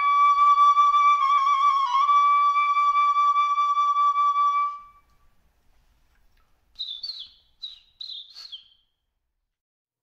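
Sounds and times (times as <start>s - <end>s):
flute note: 0.0s - 5.2s
small bird chirping: 6.7s - 9.0s.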